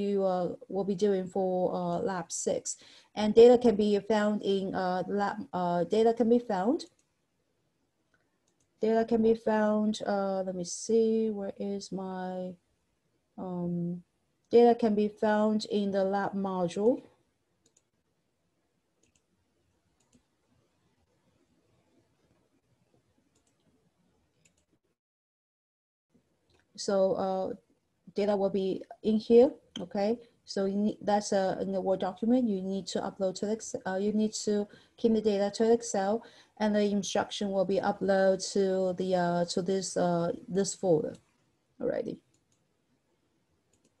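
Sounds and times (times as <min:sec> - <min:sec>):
computer mouse clicks: 0:06.8 - 0:07.2, 0:08.1 - 0:08.8, 0:17.6 - 0:18.0, 0:19.0 - 0:20.4, 0:23.2 - 0:23.8, 0:24.4 - 0:24.8, 0:42.1 - 0:42.7, 0:43.7 - 0:44.0.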